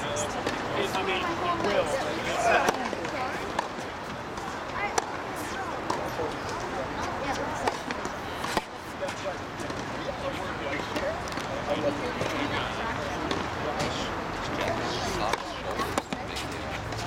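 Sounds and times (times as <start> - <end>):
racquet hitting tennis ball: 7.3 - 8.7, 15.3 - 17.0.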